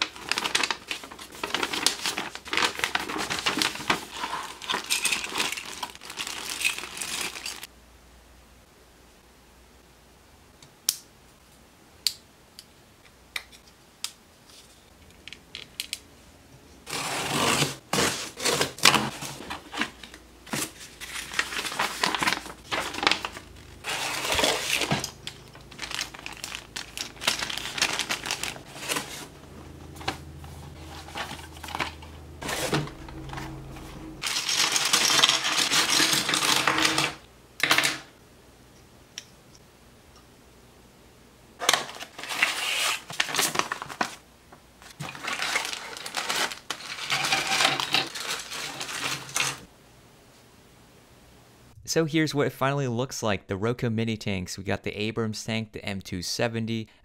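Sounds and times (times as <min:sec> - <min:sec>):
cardboard and paper packaging rustling: 0:00.0 - 0:07.7, 0:16.8 - 0:37.2, 0:41.6 - 0:49.7
plastic parts rattling: 0:00.0 - 0:07.7, 0:18.4 - 0:29.3, 0:34.2 - 0:38.0, 0:44.9 - 0:49.7
cardboard box being opened: 0:16.9 - 0:29.3.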